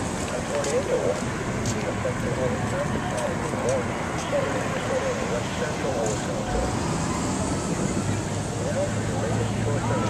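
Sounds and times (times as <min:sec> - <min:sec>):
outdoor noise rushing: 0:00.0 - 0:10.0.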